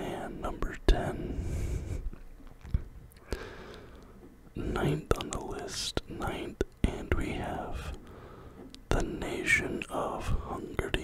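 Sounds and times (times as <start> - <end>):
man whispering: 0.0 - 2.0, 4.6 - 8.0, 8.9 - 11.0.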